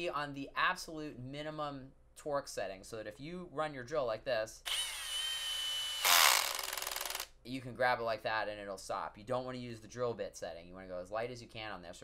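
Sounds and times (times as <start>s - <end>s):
cordless drill whining: 4.7s - 7.3s
drill clutch clicking: 4.7s - 7.3s.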